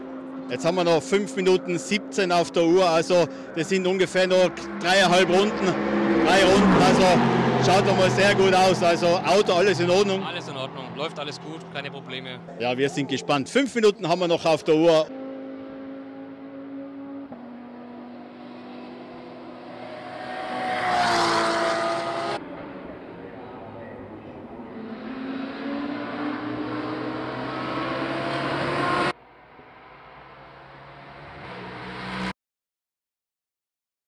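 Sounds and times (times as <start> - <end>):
race car accelerating: 0.0 - 13.5, 14.1 - 32.3
race car passing by: 0.2 - 12.6, 15.1 - 32.3.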